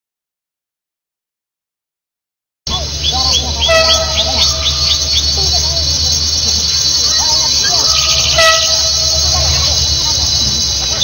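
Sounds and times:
train rumbling: 0:02.7 - 0:11.0
train horn: 0:03.4 - 0:11.0.

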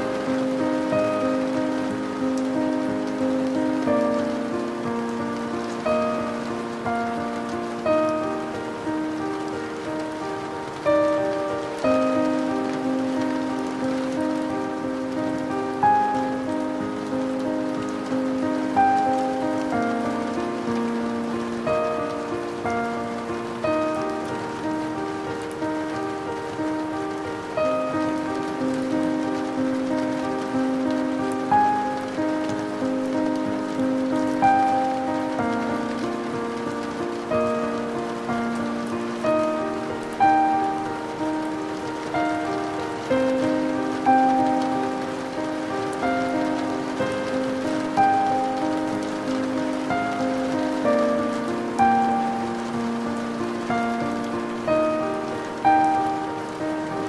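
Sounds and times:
slow classical music: 0:00.0 - 0:57.0
steady rain falling: 0:00.0 - 0:57.0.

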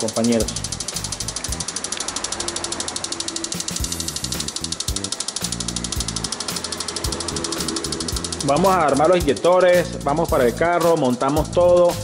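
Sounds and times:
fuel injectors clicking rapidly: 0:00.0 - 0:12.0.

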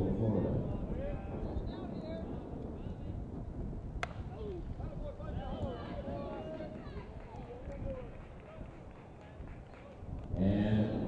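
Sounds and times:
distant shouts and chatter: 0:00.0 - 0:10.7
sharp crack: 0:04.0 - 0:04.4.

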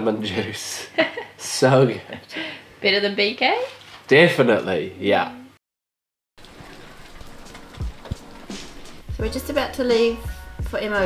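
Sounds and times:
rain falling: 0:06.4 - 0:10.2.

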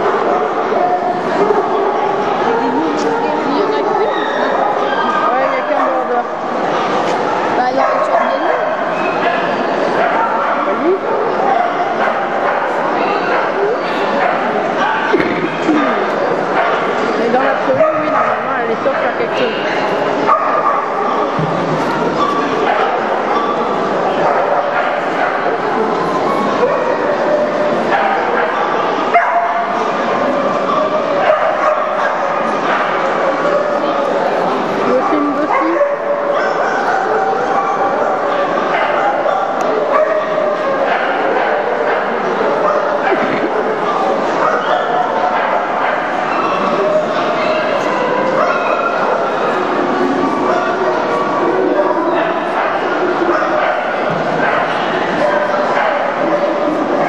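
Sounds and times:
crowd chatter: 0:00.0 - 0:57.0
many dogs barking and yipping: 0:00.0 - 0:57.0.

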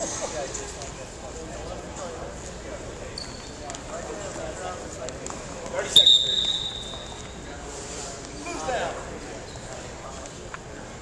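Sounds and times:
low gym murmur: 0:00.0 - 0:11.0
faint short whistle: 0:05.9 - 0:07.4
referee's whistle blast: 0:06.0 - 0:07.2.

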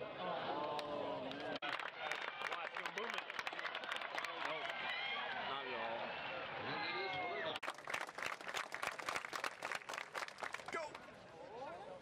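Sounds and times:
spectators clapping rapidly: 0:01.3 - 0:05.2, 0:07.6 - 0:11.0.

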